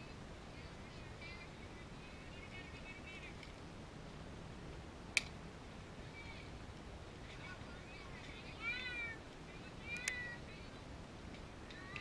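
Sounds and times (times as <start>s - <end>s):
sharp crack: 5.2s - 5.4s.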